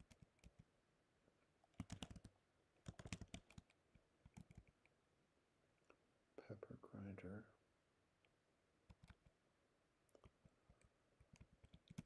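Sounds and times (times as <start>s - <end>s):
typing on computer keyboard: 0.0s - 0.7s, 1.7s - 4.8s, 8.9s - 9.3s, 10.1s - 12.0s.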